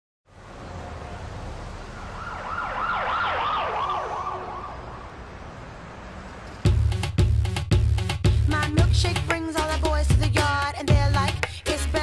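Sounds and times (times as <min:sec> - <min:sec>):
siren yelping: 0:02.0 - 0:05.1.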